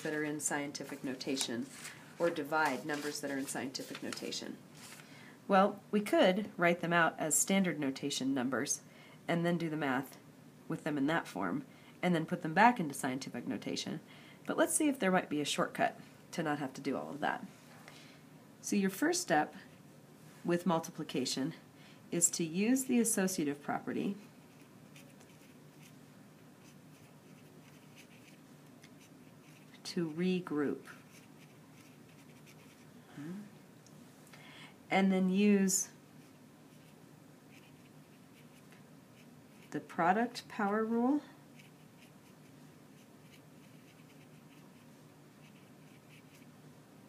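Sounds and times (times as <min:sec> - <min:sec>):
low room hum: 0:00.0 - 0:47.0
pencil scratching on paper: 0:24.4 - 0:25.9, 0:26.6 - 0:28.4, 0:29.0 - 0:30.2, 0:30.8 - 0:32.9, 0:36.7 - 0:38.6, 0:39.2 - 0:39.7, 0:41.6 - 0:46.5.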